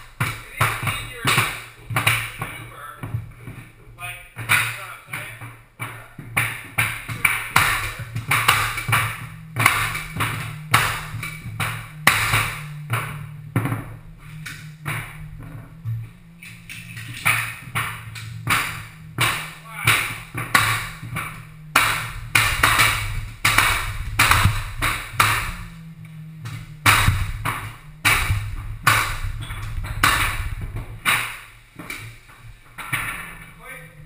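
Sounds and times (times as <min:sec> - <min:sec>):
mallet blows on flooring nailer: 0:06.4 - 0:25.8, 0:26.4 - 0:32.2.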